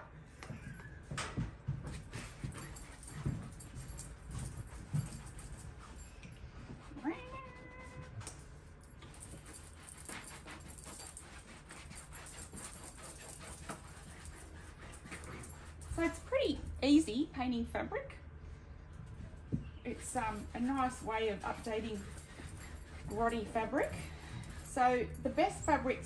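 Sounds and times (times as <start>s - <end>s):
brush scrubbing fabric: 19.9s - 23.9s.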